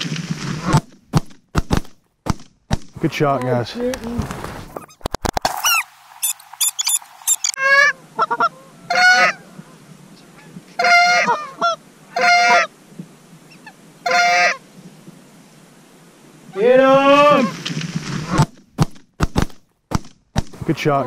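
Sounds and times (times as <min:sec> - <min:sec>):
geese honking: 0:05.6 - 0:12.7, 0:13.5 - 0:14.6.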